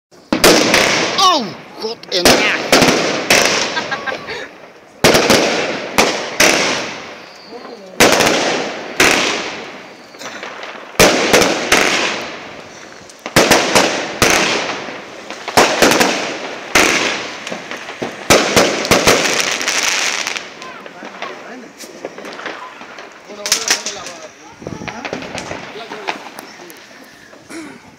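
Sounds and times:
firework crackling: 0:00.1 - 0:27.9
firework bangs: 0:00.2 - 0:27.9.

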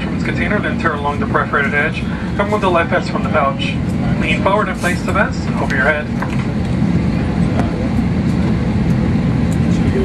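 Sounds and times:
low droning cabin hum: 0:00.0 - 0:10.0.

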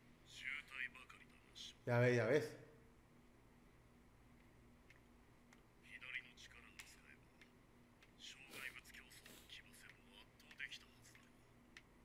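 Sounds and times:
faint whispery speech: 0:08.2 - 0:11.4.

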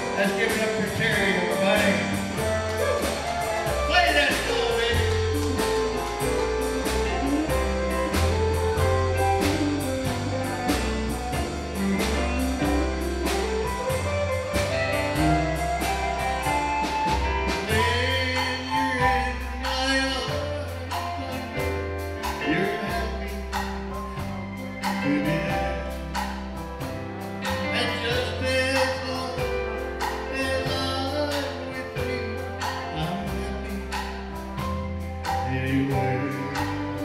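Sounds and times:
bass guitar: 0:00.0 - 0:37.0
drums keeping a steady beat: 0:00.0 - 0:37.0
sliding lead guitar line: 0:00.0 - 0:37.0.

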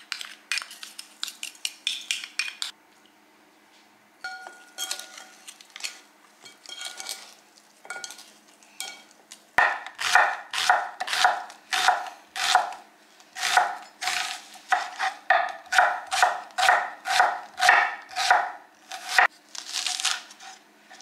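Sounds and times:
knife slicing onion on wooden board: 0:09.6 - 0:12.8, 0:13.4 - 0:19.3.

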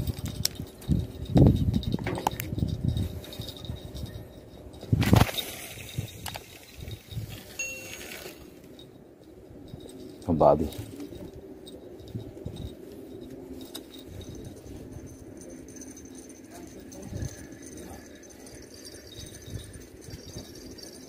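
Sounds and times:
small clicks and clinks: 0:00.0 - 0:21.0.

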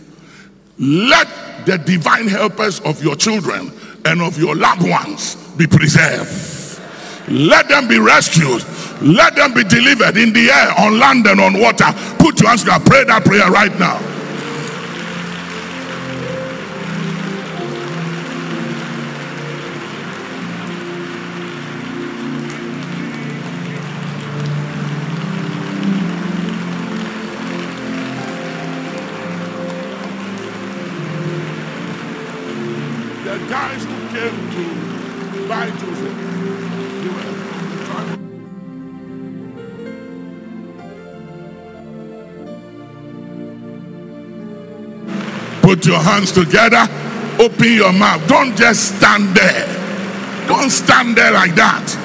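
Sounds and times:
soft music with held chords: 0:00.0 - 0:52.0
congregation praying aloud: 0:00.8 - 0:38.2, 0:45.2 - 0:52.0.

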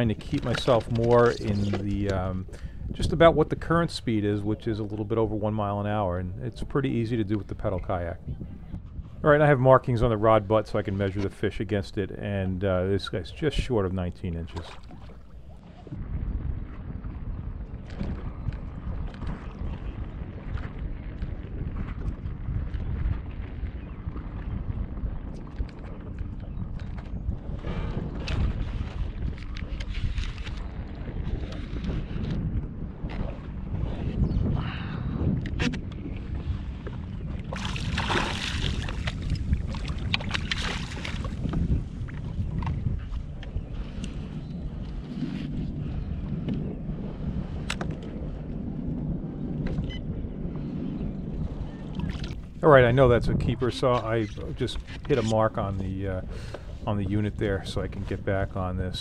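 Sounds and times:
water lapping against kayak hull: 0:00.0 - 0:03.6, 0:14.4 - 0:59.0
wind on microphone: 0:00.0 - 0:59.0.

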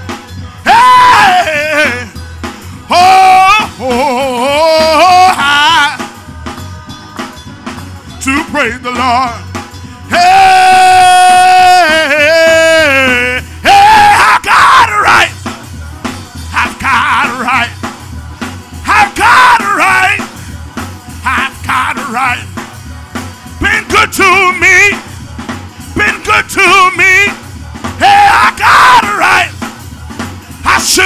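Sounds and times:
gospel singing with band: 0:00.0 - 0:31.0
steady bass line: 0:00.0 - 0:31.0
person singing a high cry: 0:00.7 - 0:02.1, 0:02.9 - 0:06.0, 0:10.1 - 0:15.3, 0:18.9 - 0:20.2, 0:28.0 - 0:29.5.

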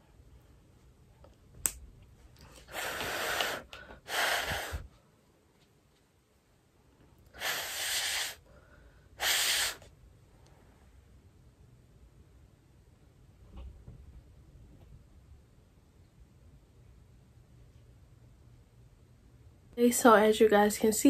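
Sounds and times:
person blowing puffs of breath: 0:02.6 - 0:04.9, 0:07.4 - 0:09.9.

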